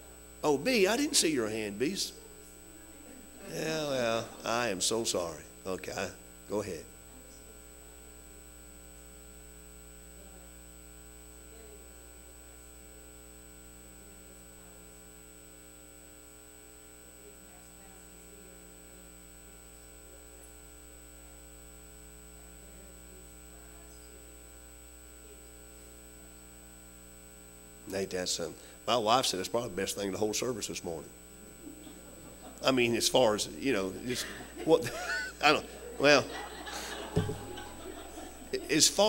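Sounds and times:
electrical mains hum: 0:00.0 - 0:39.0.

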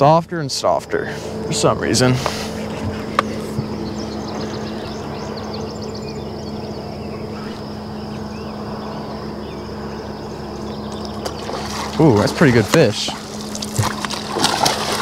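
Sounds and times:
boat motor humming: 0:00.0 - 0:15.0
water sloshing against hull: 0:00.0 - 0:15.0
faint bird chirps: 0:02.6 - 0:11.7.

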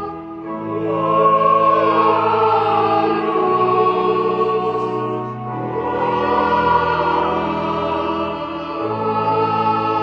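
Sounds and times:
church choir singing: 0:00.0 - 0:10.0
low sustained accompaniment: 0:00.0 - 0:10.0.

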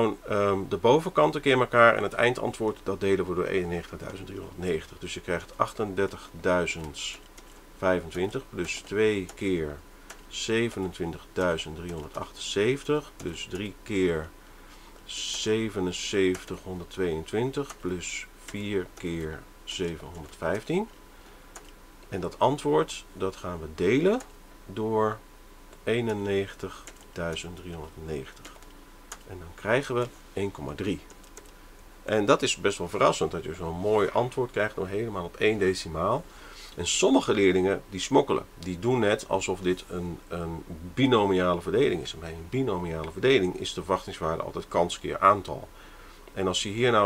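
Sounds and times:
person speaking: 0:00.0 - 0:21.0, 0:21.6 - 0:47.0
rapid clicking: 0:10.1 - 0:12.3, 0:25.7 - 0:27.5, 0:28.3 - 0:29.3, 0:31.0 - 0:31.6.

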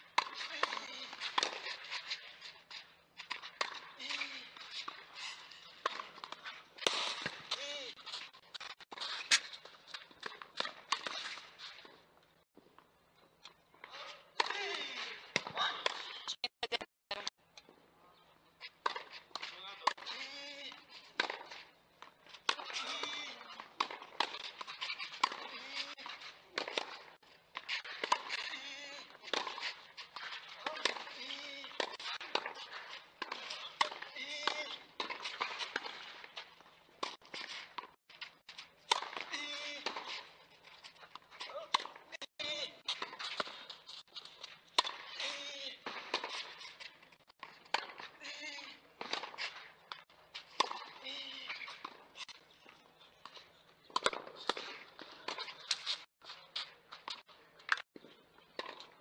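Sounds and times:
people talking: 0:16.4 - 0:17.3.

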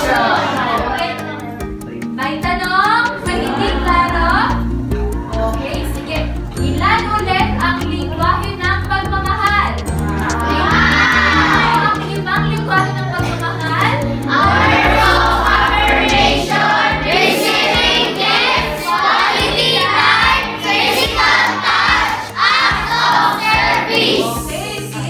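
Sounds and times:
children singing together: 0:00.0 - 0:01.5, 0:03.0 - 0:04.6, 0:10.0 - 0:13.4, 0:14.2 - 0:25.0
recorded backing music: 0:00.0 - 0:25.0.

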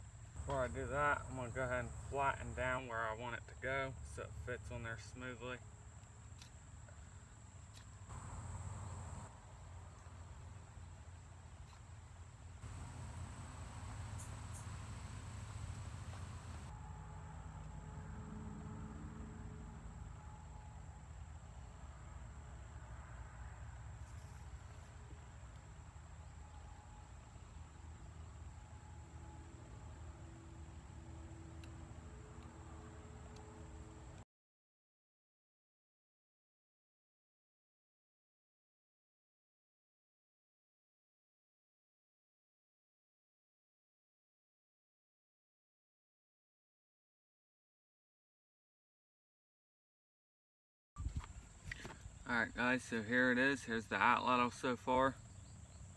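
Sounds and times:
insects droning: 0:00.0 - 0:16.7, 0:51.0 - 0:55.9.

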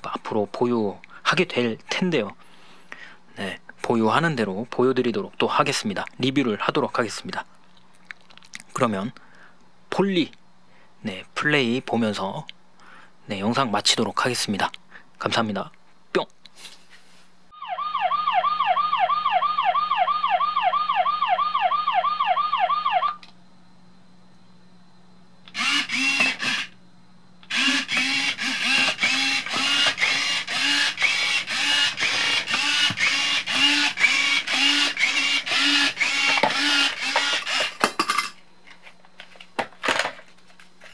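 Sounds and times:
toy electronic siren wailing: 0:17.5 - 0:23.2, 0:25.5 - 0:26.7, 0:27.5 - 0:37.6
steady low hum: 0:22.7 - 0:40.9.

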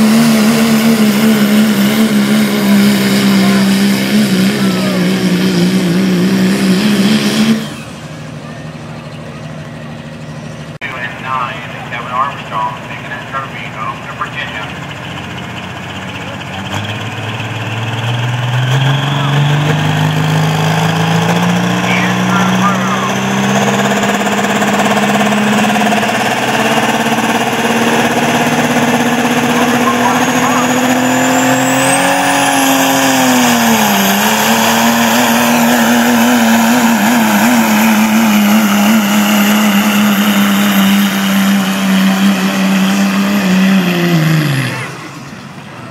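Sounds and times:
diesel engine at full throttle: 0:00.0 - 0:45.9.

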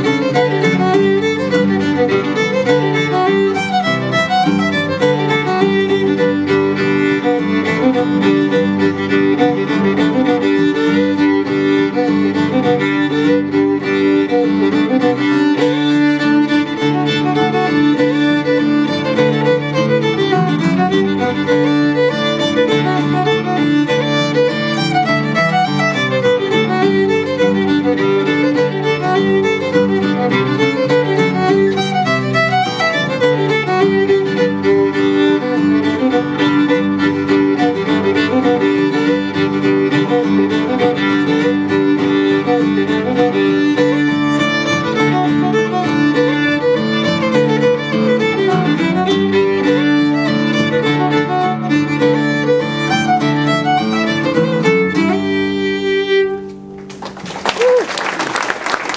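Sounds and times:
strummed acoustic guitar: 0:00.0 - 0:57.0
fiddle melody: 0:00.0 - 0:58.9.

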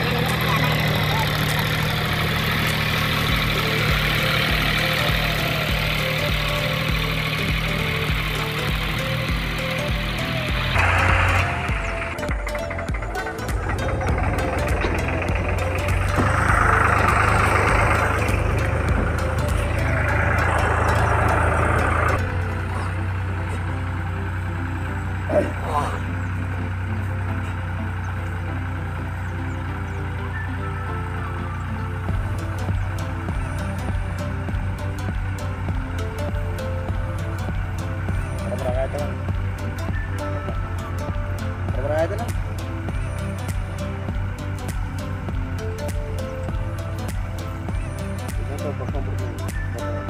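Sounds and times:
tractor diesel engine running: 0:00.0 - 0:50.0.

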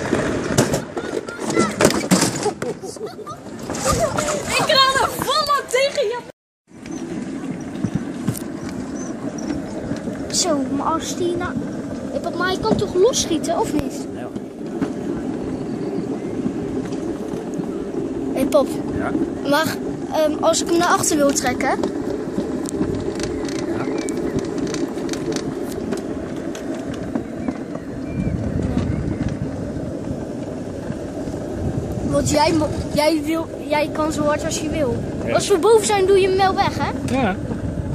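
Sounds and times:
wheels rattling in metal track: 0:00.0 - 0:37.9.

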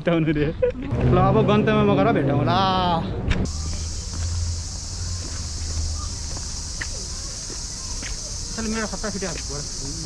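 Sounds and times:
insects chirring: 0:03.5 - 0:10.0.

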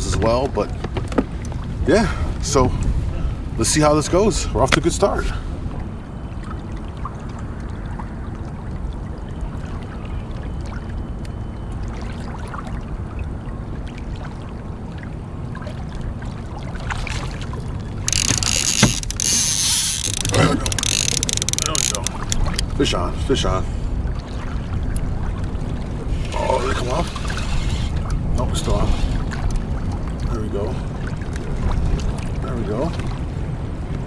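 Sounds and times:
water washing against hull: 0:00.0 - 0:34.0
fishing reel drag buzzing: 0:18.0 - 0:22.6
reel clicks: 0:18.0 - 0:22.7.

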